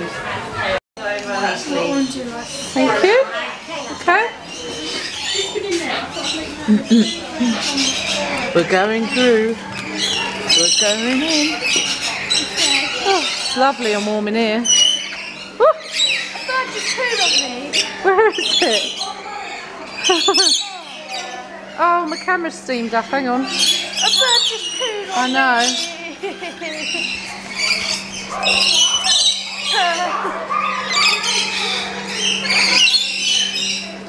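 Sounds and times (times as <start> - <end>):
people's voices: 0.0 - 33.0
lorikeets squawking and chirping: 1.0 - 34.0.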